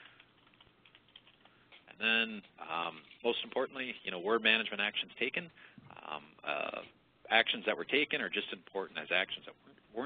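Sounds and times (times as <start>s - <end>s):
faint computer keyboard typing: 0.0s - 3.2s.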